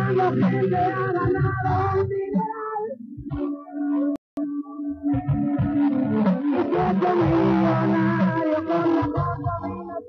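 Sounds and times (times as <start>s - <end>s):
live rock band playing: 0.0s - 3.5s, 5.0s - 10.0s
person singing: 0.0s - 10.0s.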